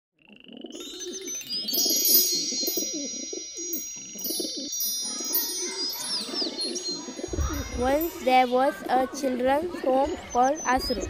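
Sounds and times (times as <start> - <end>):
birds calling: 0.3 - 11.0
wind chimes ringing: 0.7 - 11.0.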